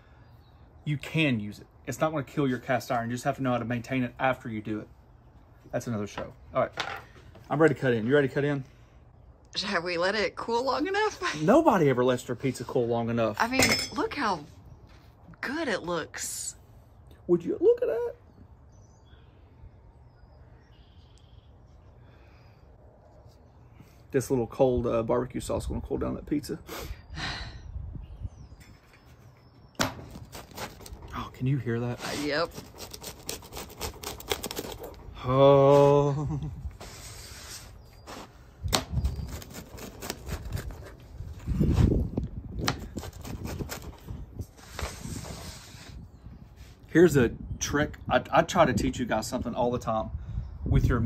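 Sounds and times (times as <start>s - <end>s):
faint bird chirps: 18.1s - 24.0s
pizza cutter crunching crust: 30.0s - 31.2s, 31.8s - 35.8s, 36.9s - 42.0s, 42.6s - 46.0s.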